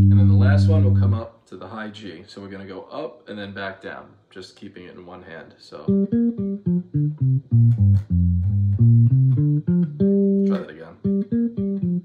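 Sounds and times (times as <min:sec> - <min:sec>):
electric bass plucked notes: 0:00.0 - 0:01.2, 0:05.9 - 0:12.0.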